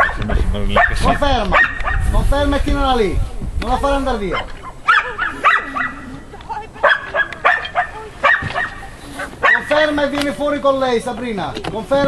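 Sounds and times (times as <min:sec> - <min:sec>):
dog barking: 0:00.0 - 0:02.0, 0:04.3 - 0:06.2, 0:06.8 - 0:10.0.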